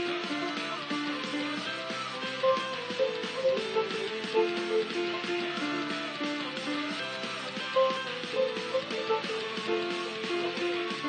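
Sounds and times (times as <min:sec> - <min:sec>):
backing track with strummed guitar: 0:00.0 - 0:11.0
digital piano short repeated notes: 0:07.7 - 0:10.9.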